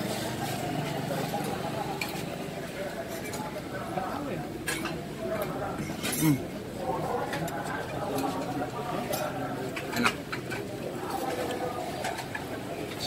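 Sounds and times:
murmur of diners talking: 0.0s - 13.0s.

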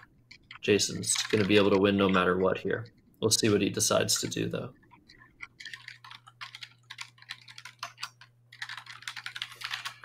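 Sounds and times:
low electrical hum: 0.0s - 10.0s
rapid keyboard typing: 0.0s - 10.0s.

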